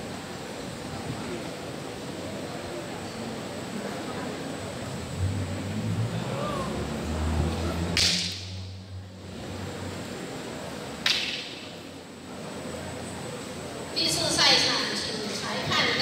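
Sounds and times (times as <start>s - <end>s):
cane striking sharp cracks: 7.9s - 8.6s, 11.0s - 11.7s.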